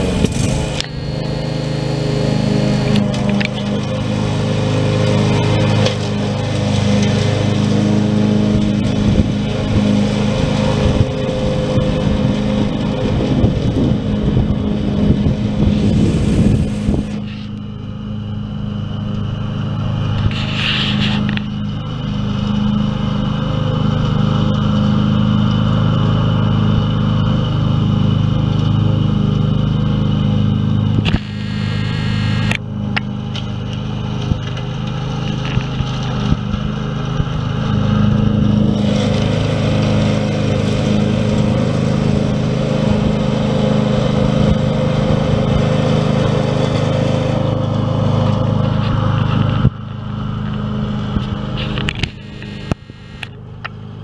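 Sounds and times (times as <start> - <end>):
ride-on lawn mower engine running: 0.0 - 54.0.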